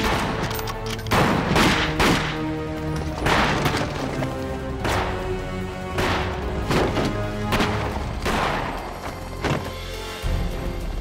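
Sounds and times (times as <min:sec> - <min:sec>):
dramatic background music: 0:00.0 - 0:11.0
gunshots: 0:01.1 - 0:02.5.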